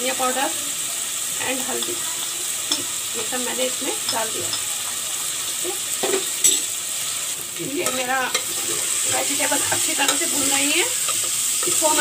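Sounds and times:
vegetables sizzling in oil: 0.0s - 12.0s
metal spoon stirring in pot: 7.8s - 12.0s.

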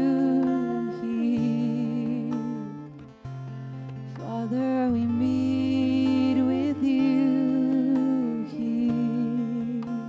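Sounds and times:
person humming a melody: 0.0s - 3.0s, 4.2s - 10.0s
acoustic guitar: 0.0s - 10.0s.

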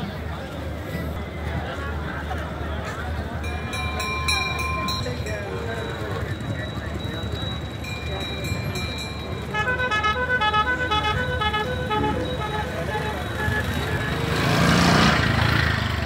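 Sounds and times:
crowd murmur: 0.0s - 16.0s
musical vehicle horn tune: 9.2s - 14.9s.

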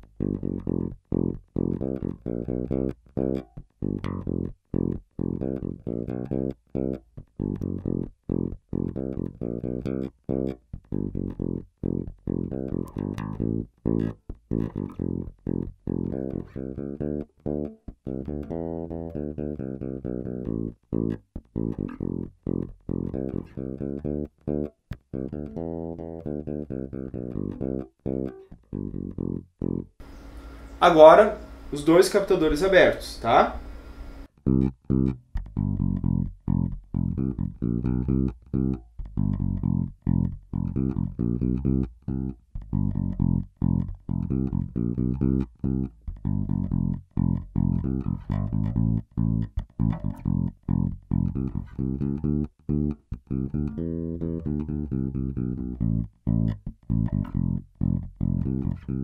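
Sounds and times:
electric bass plucked groove: 0.0s - 59.0s.

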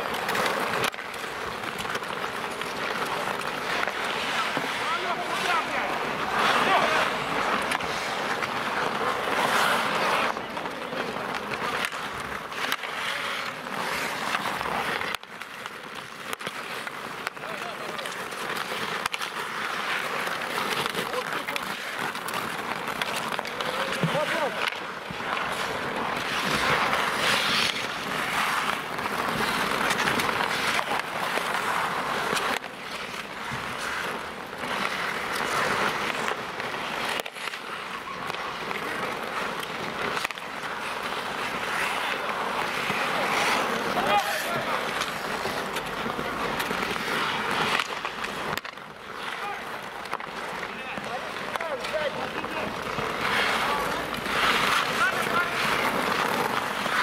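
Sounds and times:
hockey sticks knocking puck: 0.0s - 57.0s
skate blades scraping ice: 0.0s - 57.0s
players shouting: 3.8s - 7.5s, 43.0s - 45.0s, 49.2s - 57.0s.

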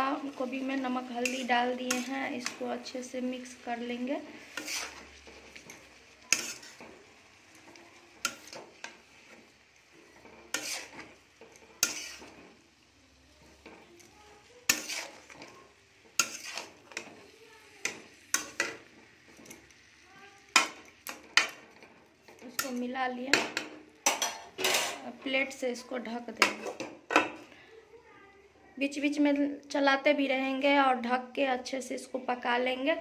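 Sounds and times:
faint sizzle of frying: 0.0s - 33.0s
metal spatula scraping metal pan: 0.1s - 12.8s, 13.4s - 25.2s, 26.4s - 27.4s.

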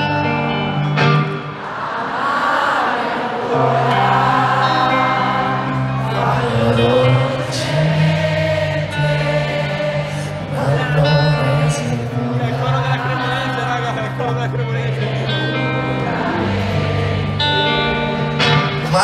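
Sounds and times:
low guitar notes: 0.0s - 1.7s, 3.5s - 19.0s
crowd singing along: 0.0s - 19.0s.

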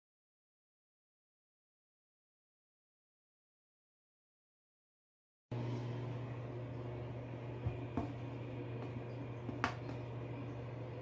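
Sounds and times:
steady low hum: 5.5s - 11.0s.

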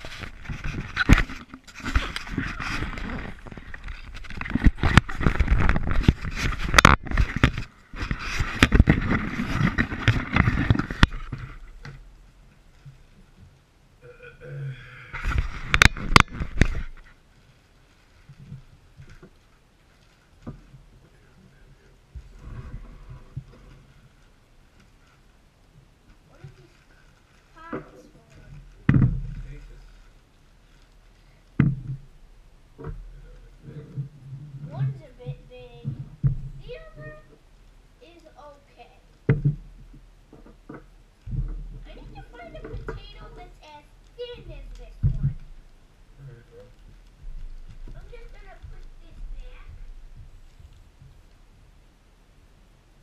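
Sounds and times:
camera handling rubbing and scraping: 0.0s - 11.7s, 15.2s - 17.2s
plastic bag rustling: 0.0s - 11.8s, 15.3s - 32.2s, 38.0s - 45.8s, 46.6s - 51.5s.

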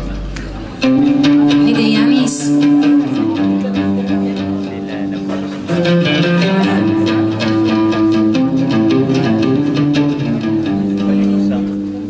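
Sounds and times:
double bass: 0.0s - 12.0s
plucked lute: 0.0s - 12.0s.

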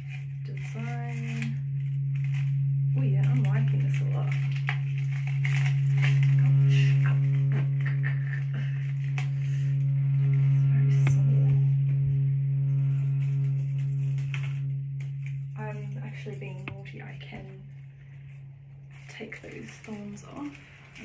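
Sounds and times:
dried flower stems rustling: 0.0s - 21.0s
steady low drone: 0.0s - 21.0s.

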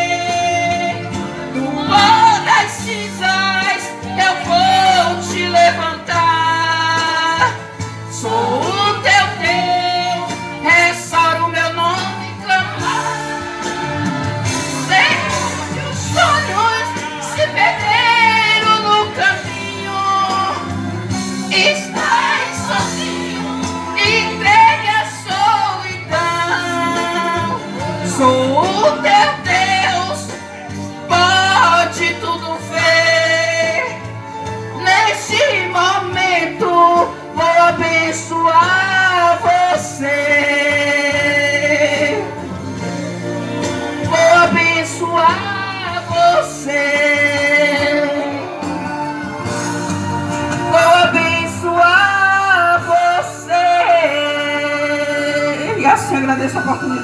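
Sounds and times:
solo voice singing: 0.0s - 56.3s
instrumental backing: 0.0s - 57.0s.

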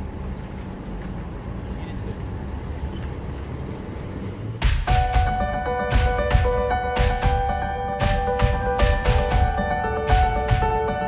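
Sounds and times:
trolley wheels rolling on pavement: 0.0s - 4.6s
street traffic: 0.0s - 11.0s.

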